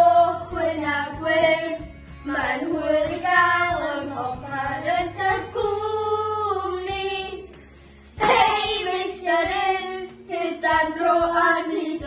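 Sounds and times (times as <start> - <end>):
children singing: 0.0 - 7.5, 8.2 - 12.0.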